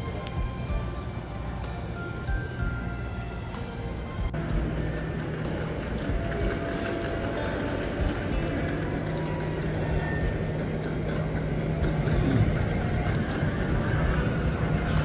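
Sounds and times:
low mechanical hum: 0.0 - 15.0
music playing: 0.0 - 15.0.

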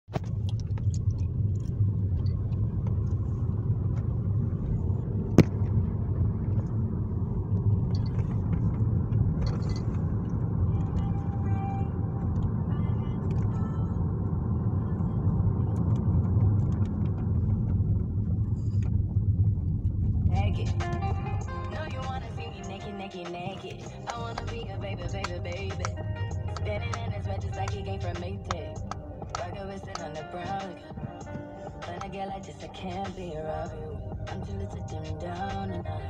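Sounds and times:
car cabin rumble: 0.1 - 36.0.

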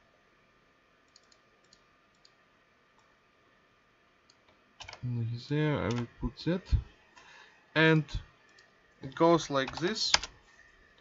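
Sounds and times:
computer mouse clicks: 1.0 - 2.4, 4.2 - 5.0, 8.5 - 8.7.

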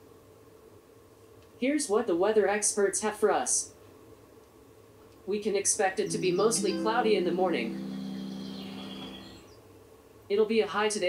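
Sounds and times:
robot speech: 6.0 - 8.2
soft synthesized tone: 6.0 - 9.4.

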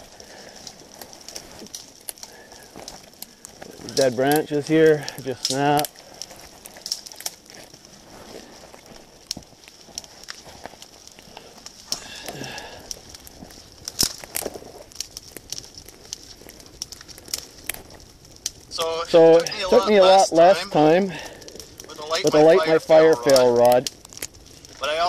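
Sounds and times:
dry twigs snapping: 0.0 - 25.0
kindling fire crackling: 0.0 - 25.0.

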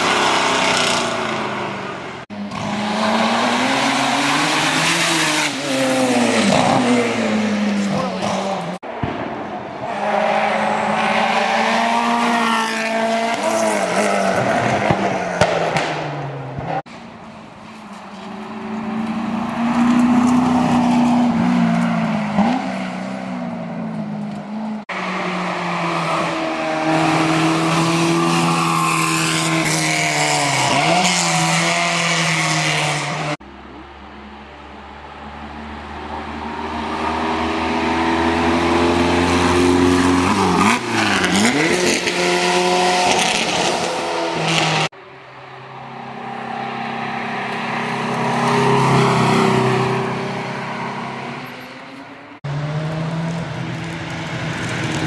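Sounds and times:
race car engines with gear changes: 0.0 - 8.8, 35.9 - 45.0, 46.3 - 55.0
single-seater race car passing: 34.3 - 55.0.

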